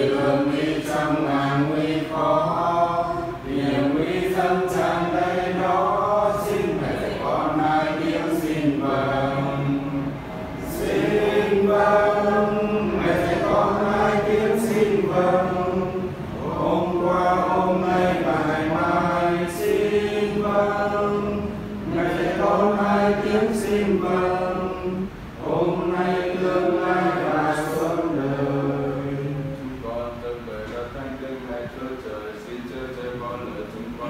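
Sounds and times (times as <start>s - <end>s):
voices chanting prayer in unison: 0.0s - 34.0s.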